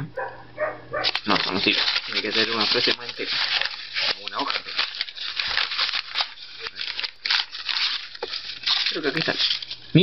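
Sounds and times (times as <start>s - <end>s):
book pages rustling: 1.0s - 10.0s.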